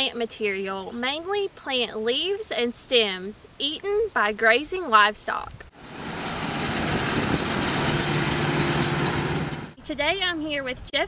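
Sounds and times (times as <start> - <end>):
baler machinery rushing: 5.7 - 9.8
tractor engine drone: 5.7 - 9.8.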